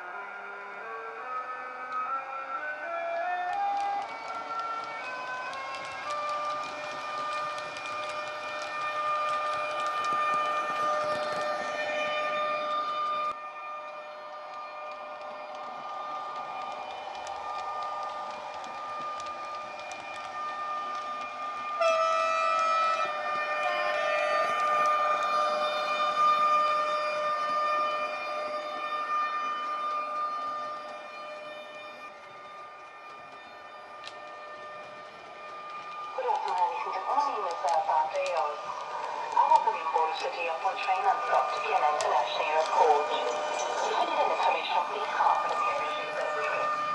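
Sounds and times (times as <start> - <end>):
electric locomotive whine: 0.0 - 46.9.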